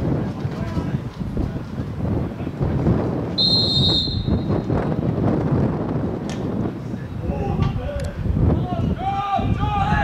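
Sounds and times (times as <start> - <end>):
wind buffeting microphone: 0.0 - 10.0
referee's pea whistle blast: 3.4 - 4.6.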